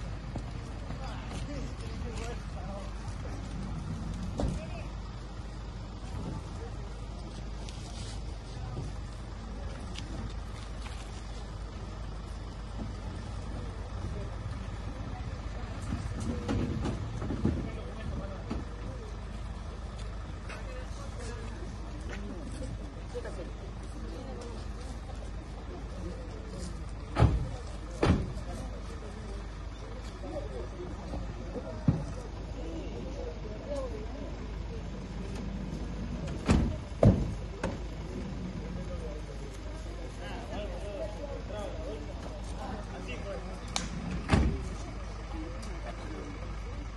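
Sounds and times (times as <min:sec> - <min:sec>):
faint voices: 0:00.0 - 0:46.9
van engine idling: 0:00.0 - 0:46.9
car door slams: 0:27.1 - 0:28.5, 0:36.3 - 0:37.8, 0:44.1 - 0:44.7.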